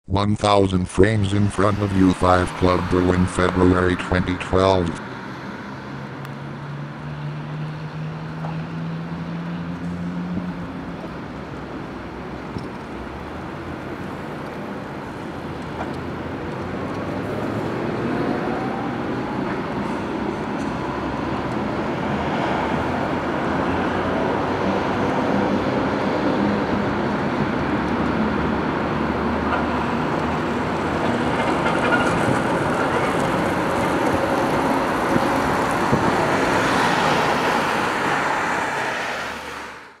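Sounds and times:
cars passing: 0:01.2 - 0:40.0.

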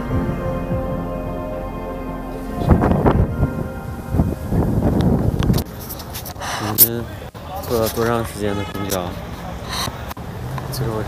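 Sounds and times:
wind buffeting microphone: 0:00.0 - 0:07.2
faint music: 0:00.0 - 0:08.1.

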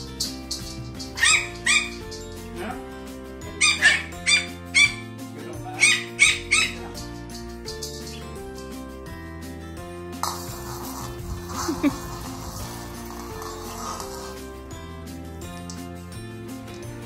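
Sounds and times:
background music: 0:00.0 - 0:17.0
puppy yapping: 0:01.0 - 0:02.2, 0:03.6 - 0:05.1, 0:05.8 - 0:06.9.

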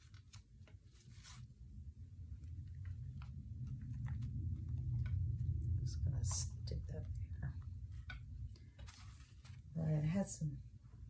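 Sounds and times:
hand rubbing paper: 0:00.0 - 0:01.6, 0:06.2 - 0:09.7
paper rustle: 0:00.0 - 0:01.6, 0:07.9 - 0:09.7.

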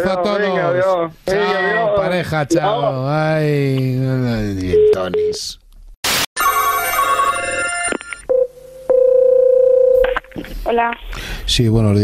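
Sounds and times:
telephone ringback tone: 0:06.4 - 0:10.0.

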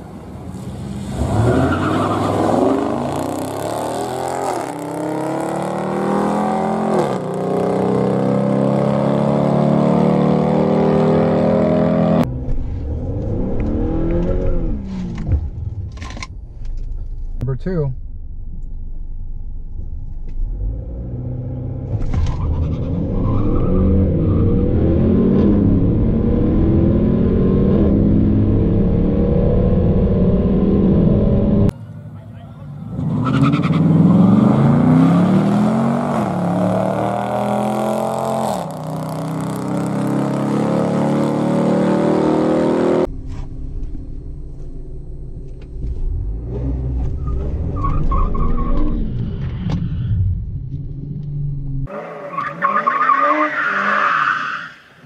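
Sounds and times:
car engine at full throttle: 0:00.0 - 0:17.4, 0:18.0 - 0:54.2
cars accelerating away: 0:32.8 - 0:43.1.

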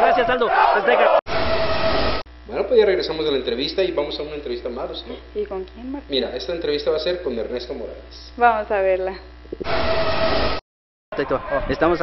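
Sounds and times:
rushing noise: 0:01.3 - 0:02.2, 0:09.6 - 0:10.6.

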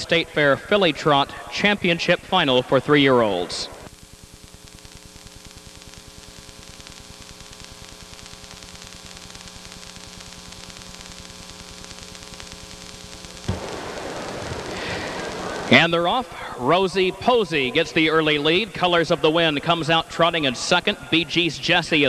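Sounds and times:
hiss and electrical hum: 0:00.0 - 0:22.0
loud rush of noise: 0:13.5 - 0:18.7.

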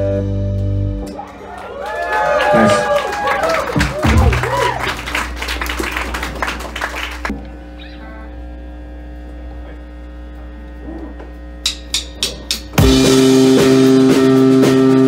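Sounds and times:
live rock band playing: 0:00.0 - 0:01.6, 0:02.5 - 0:06.5, 0:11.8 - 0:15.0
amplifier hum: 0:03.6 - 0:13.0.

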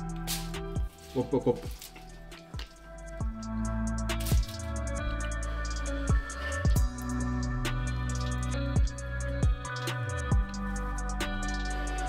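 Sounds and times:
chill background music: 0:00.0 - 0:12.0.

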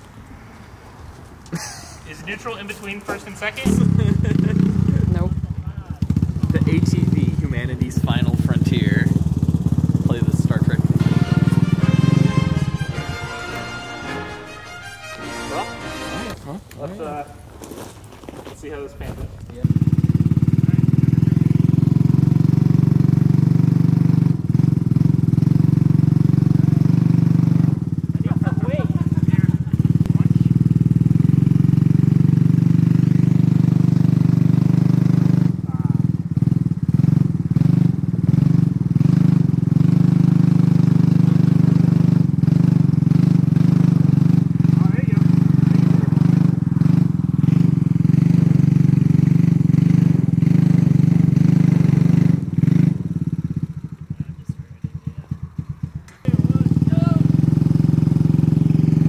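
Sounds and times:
quad engine running: 0:03.6 - 0:14.4, 0:19.6 - 0:59.0.

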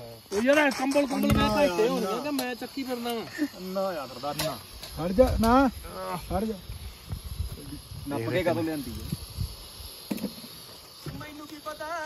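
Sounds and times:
gas stove burner hissing: 0:00.0 - 0:12.0.

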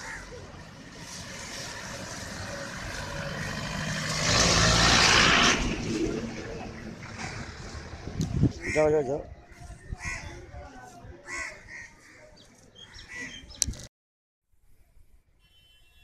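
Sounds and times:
bus driving past: 0:00.0 - 0:08.5.

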